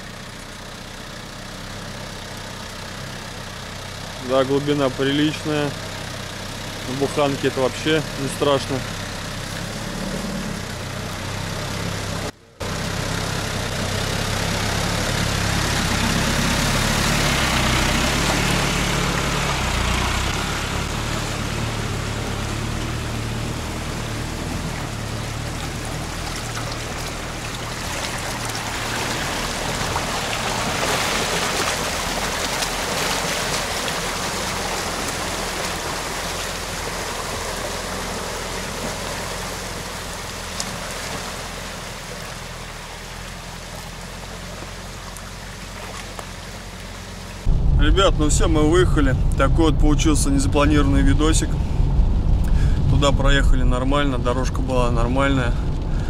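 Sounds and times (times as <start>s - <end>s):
low engine hum: 0.0s - 56.0s
water churning and rushing: 3.4s - 56.0s.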